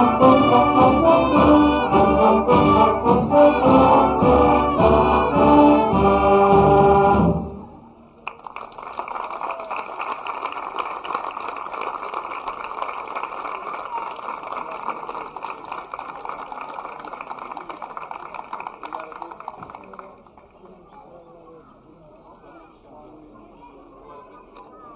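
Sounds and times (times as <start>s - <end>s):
audience applauding: 8.2s - 21.2s.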